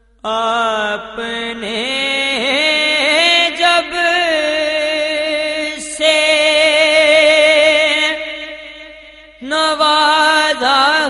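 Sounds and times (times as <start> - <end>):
solo voice singing with echo: 0.0 - 11.0.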